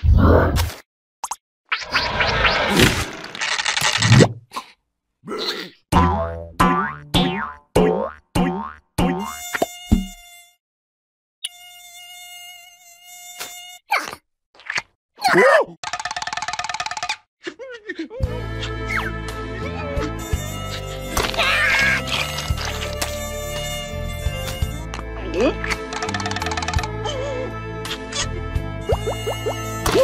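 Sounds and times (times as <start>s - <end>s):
cartoon mosquito buzzing: 9.1s - 10.6s, 11.4s - 14.1s, 20.2s - 25.0s, 28.8s - 30.0s.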